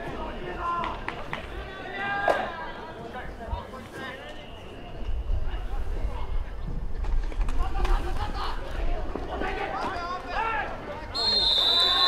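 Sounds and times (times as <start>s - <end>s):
whistle blast: 11.1s - 12.0s.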